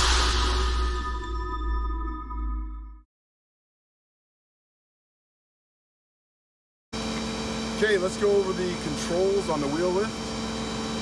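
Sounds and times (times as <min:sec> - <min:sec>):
high-pitched power take-off whine: 0:00.0 - 0:03.0.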